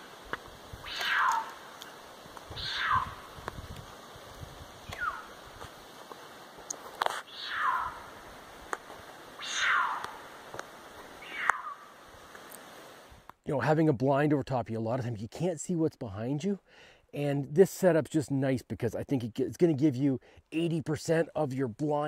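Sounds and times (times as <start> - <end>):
cougar calling: 0.8 - 1.9, 2.5 - 3.4, 4.8 - 5.4, 7.2 - 8.2, 9.4 - 10.3, 11.2 - 11.9.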